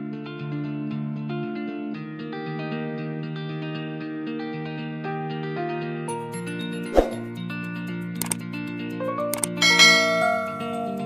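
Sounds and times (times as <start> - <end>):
background music: 0.0 - 11.0
sharp click: 8.2 - 8.4, 9.3 - 9.6
bright bell chime: 9.6 - 11.0.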